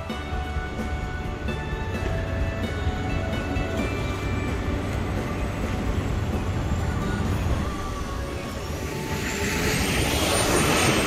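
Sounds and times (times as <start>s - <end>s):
background music: 0.0s - 11.0s
street traffic rumble: 0.0s - 11.0s.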